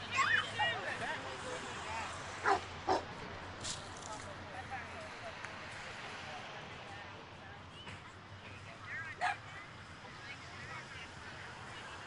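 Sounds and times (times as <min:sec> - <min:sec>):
dog barking: 0:02.4 - 0:03.0.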